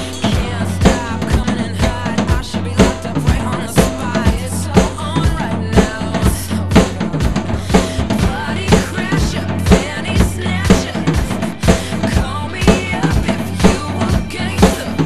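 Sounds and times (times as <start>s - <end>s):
drum kit rock beat: 0.0s - 15.0s
recorded pop-rock song: 0.0s - 15.0s.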